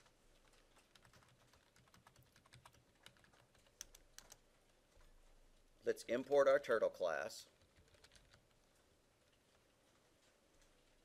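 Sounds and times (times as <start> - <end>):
computer keyboard typing: 0.0 - 4.4, 7.5 - 8.6.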